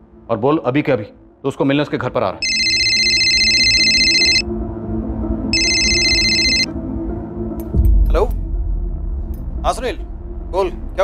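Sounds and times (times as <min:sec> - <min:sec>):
low background music: 0:00.0 - 0:11.0
mobile phone ringing: 0:02.4 - 0:04.4, 0:05.5 - 0:06.7.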